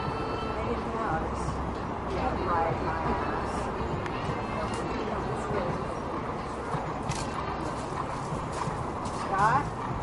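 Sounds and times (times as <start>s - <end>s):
outdoor background noise: 0.0s - 10.0s
horse hoofbeats on grass: 6.5s - 10.0s.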